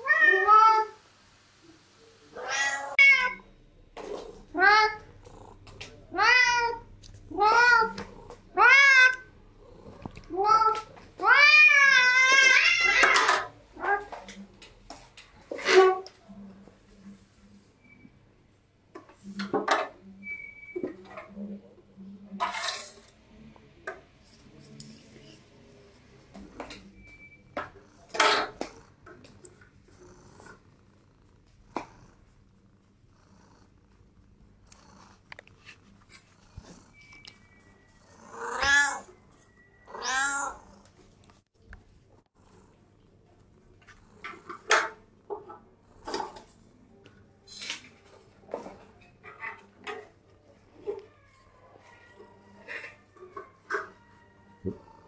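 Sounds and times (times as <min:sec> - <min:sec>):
cat meowing: 0:00.0 - 0:01.0, 0:02.4 - 0:03.5, 0:04.6 - 0:05.4, 0:06.1 - 0:09.3, 0:10.0 - 0:14.1, 0:36.5 - 0:40.8, 0:50.8 - 0:55.0.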